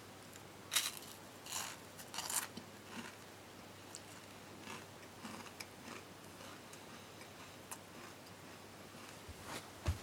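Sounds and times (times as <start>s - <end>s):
steady low hiss: 0.0s - 10.0s
small objects clicking and scraping: 0.7s - 2.6s.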